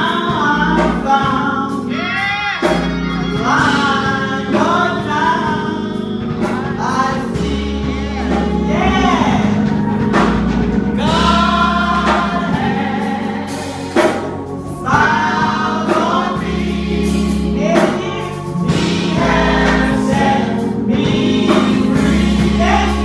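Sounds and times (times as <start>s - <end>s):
woman singing gospel song: 0.0s - 10.3s, 10.9s - 23.0s
instrumental backing with bass: 0.0s - 23.0s
voices singing along: 0.0s - 23.0s.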